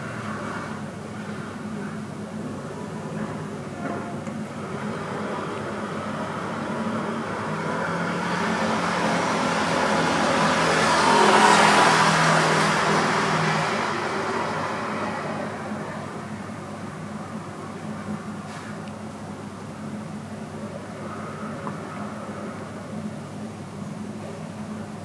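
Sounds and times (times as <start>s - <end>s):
vehicle passing by: 4.6s - 16.3s.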